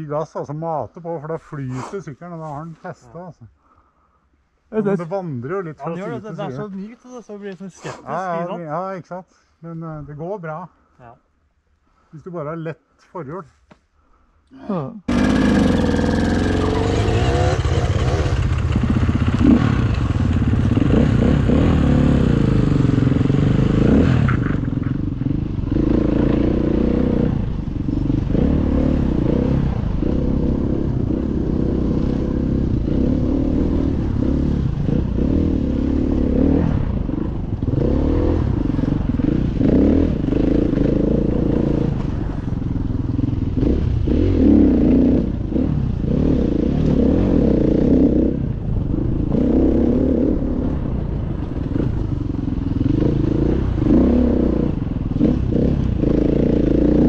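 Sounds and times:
motorcycle engine revving: 15.1 - 57.0.

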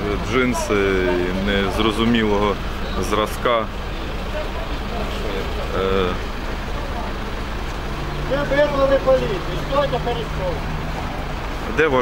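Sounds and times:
people talking: 0.0 - 10.8, 11.6 - 12.0
low rumble of city traffic: 0.0 - 12.0.

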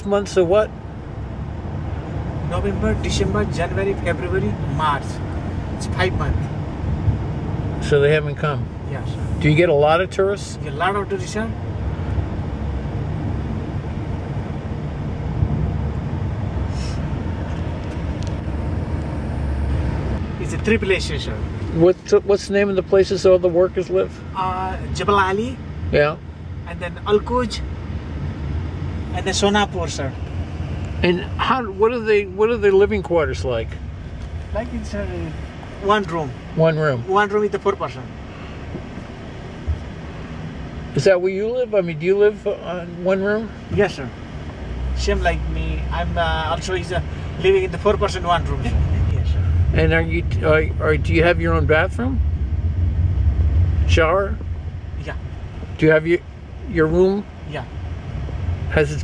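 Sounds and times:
car cabin road rumble: 0.0 - 59.0.

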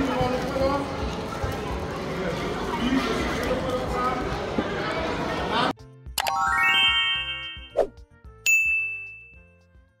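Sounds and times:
rising chime notes: 6.2 - 7.8
bell ding: 8.4 - 9.4.

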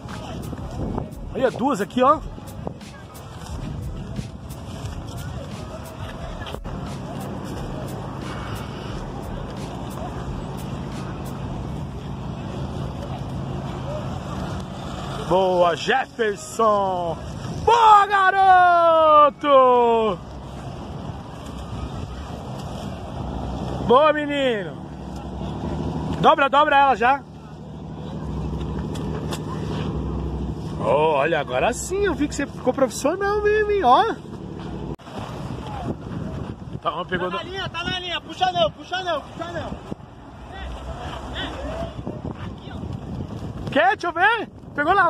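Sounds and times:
faint distant voices: 0.0 - 36.6
outdoor noise: 0.0 - 45.0
vehicle engine idling: 3.8 - 15.5, 20.2 - 35.0
man's voice: 30.8 - 34.2.

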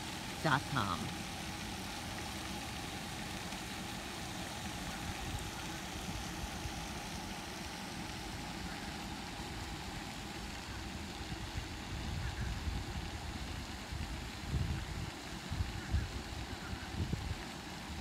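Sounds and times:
fountain spray hissing: 0.0 - 18.0
wind rumbling on microphone: 10.8 - 18.0.

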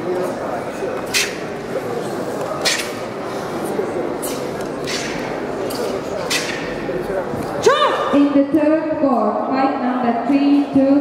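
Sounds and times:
murmur of chatter in a hall: 0.0 - 11.0.

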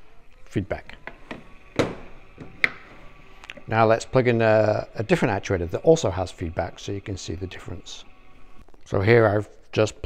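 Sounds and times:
knocks and clicks on a table: 1.1 - 3.0.

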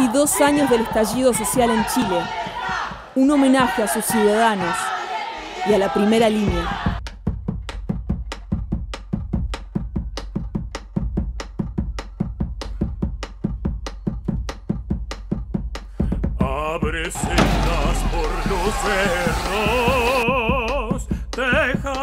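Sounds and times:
person singing with vibrato: 17.0 - 21.0.

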